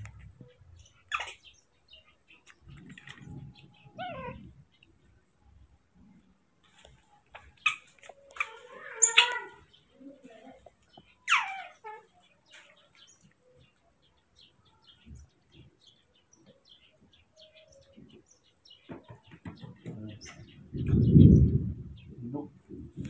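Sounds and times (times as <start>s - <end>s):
monkey squeaks and chirps: 1.0s - 1.5s, 3.3s - 4.5s, 7.4s - 9.6s, 11.2s - 12.1s.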